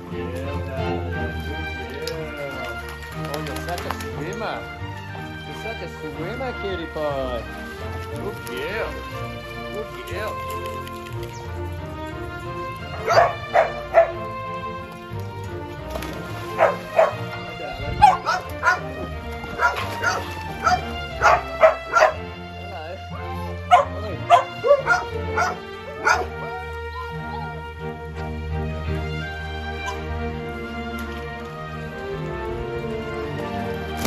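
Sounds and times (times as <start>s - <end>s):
background music: 0.0s - 34.0s
dogs barking: 12.6s - 14.8s, 16.1s - 22.5s, 23.4s - 26.7s, 29.7s - 30.3s.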